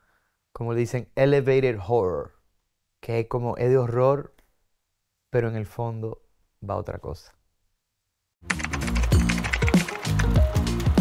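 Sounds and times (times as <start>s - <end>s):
music with sliding low notes: 8.5s - 11.0s.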